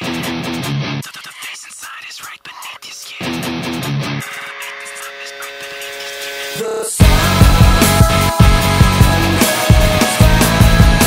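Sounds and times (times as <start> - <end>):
whispered vocals: 1.0 - 3.4, 4.2 - 7.1.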